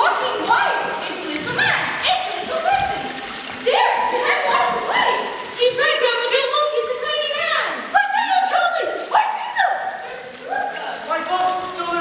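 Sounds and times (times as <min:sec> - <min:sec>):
children calling out: 0:00.0 - 0:11.1.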